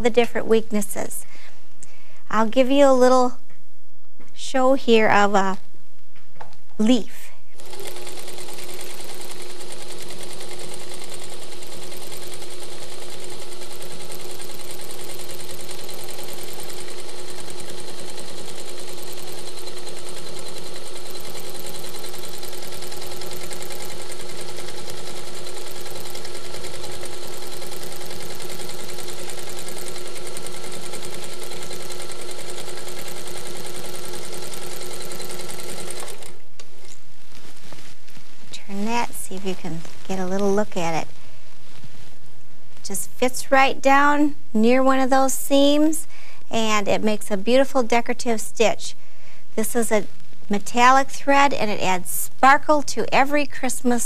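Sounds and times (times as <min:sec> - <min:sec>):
quilting machine stitching: 0:07.6 - 0:36.4.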